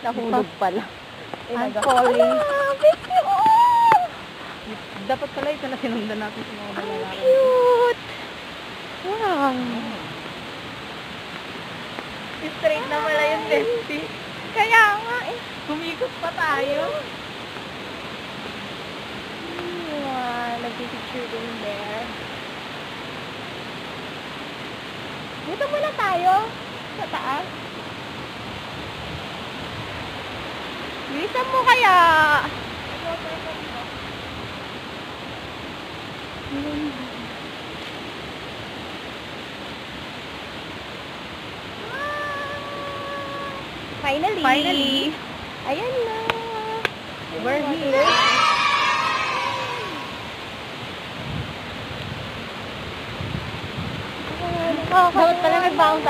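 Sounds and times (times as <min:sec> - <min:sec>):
waterfall rushing: 0:00.0 - 0:56.0
person speaking: 0:01.5 - 0:03.8, 0:12.4 - 0:14.1
waterfall pouring into pool: 0:45.9 - 0:50.9.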